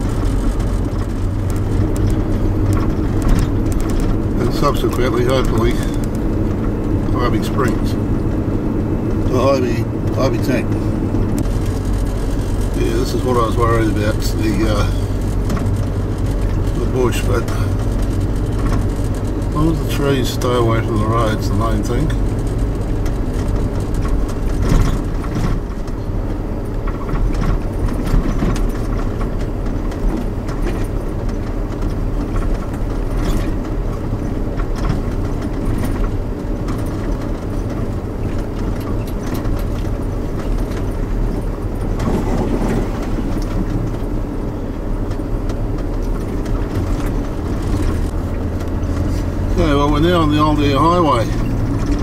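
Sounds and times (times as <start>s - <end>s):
vehicle engine drone: 0.0s - 52.0s
vehicle knocks and rattles: 0.0s - 52.0s.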